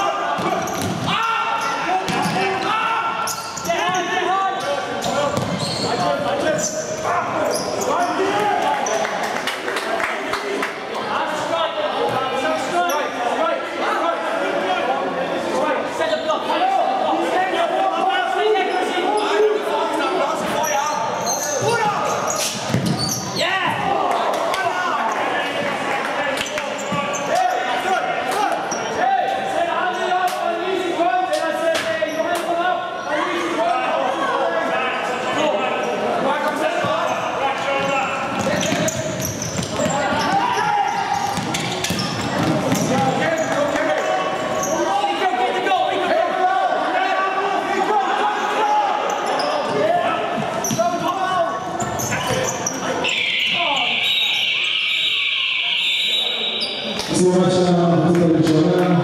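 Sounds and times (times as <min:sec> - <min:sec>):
players calling: 0:00.0 - 0:59.0
ball kicked and bouncing on court: 0:00.4 - 0:01.1, 0:05.3 - 0:05.7, 0:22.5 - 0:23.1, 0:41.2 - 0:43.7.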